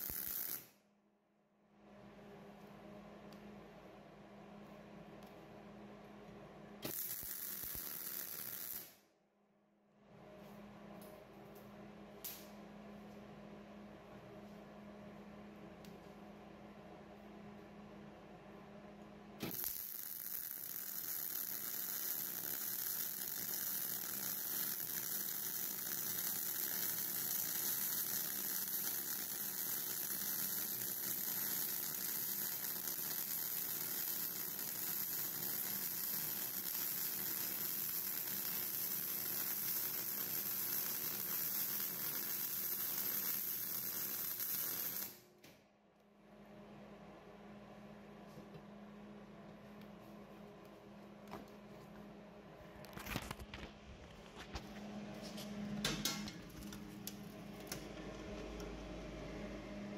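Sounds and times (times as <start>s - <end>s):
welding arc crackling: 0.0s - 0.7s, 6.8s - 9.0s, 19.4s - 45.2s.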